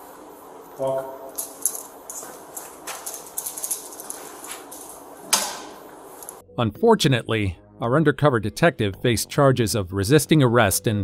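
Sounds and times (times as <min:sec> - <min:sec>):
keys jingling: 0:01.3 - 0:05.2, 0:06.1 - 0:06.4.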